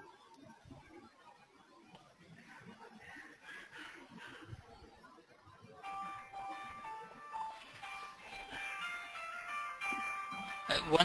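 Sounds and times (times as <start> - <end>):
phone ringtone melody: 5.8 - 11.0.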